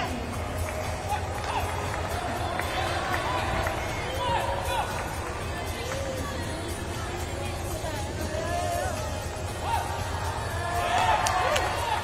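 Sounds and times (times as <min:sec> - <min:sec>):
background music: 0:00.0 - 0:12.0
crowd chatter: 0:00.0 - 0:12.0
steady low rumble: 0:00.0 - 0:12.0.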